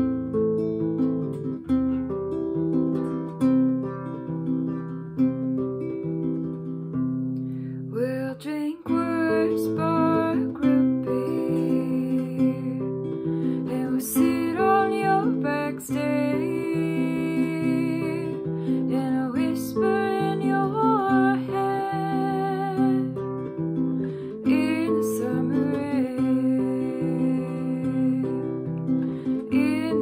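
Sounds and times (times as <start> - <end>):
classical guitar chords: 0.0 - 30.0
woman singing: 7.9 - 30.0.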